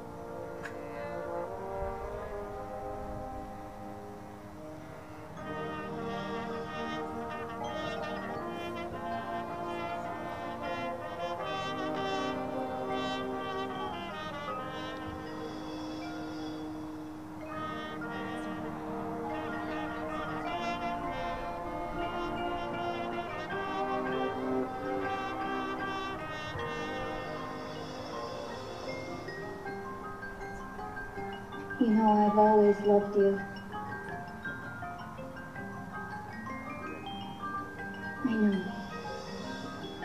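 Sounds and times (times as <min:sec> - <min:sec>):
marching band playing: 0:00.0 - 0:30.4.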